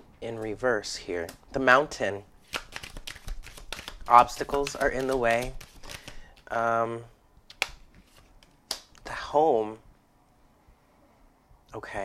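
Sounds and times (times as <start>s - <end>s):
cards being shuffled: 2.4s - 6.5s, 7.5s - 9.1s.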